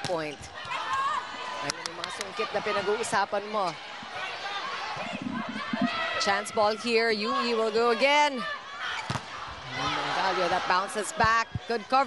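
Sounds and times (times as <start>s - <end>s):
crowd voices: 0.7s - 12.0s.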